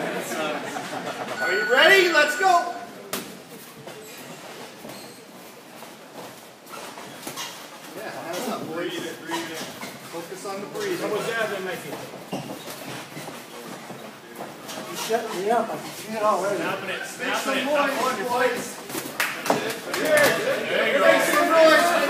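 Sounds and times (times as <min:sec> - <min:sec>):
spectators talking and shouting: 0:19.7 - 0:22.0.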